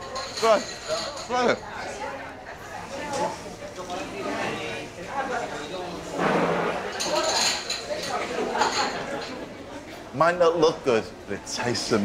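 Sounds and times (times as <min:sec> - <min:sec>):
china cups clinking: 0:00.0 - 0:01.7, 0:06.9 - 0:09.3
laughter: 0:08.2 - 0:09.9.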